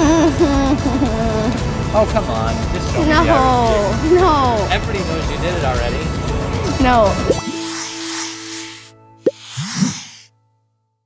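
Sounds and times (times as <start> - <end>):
high hissy swoosh: 7.2 - 10.3
hissing swoop with sliding pitch: 7.2 - 10.3.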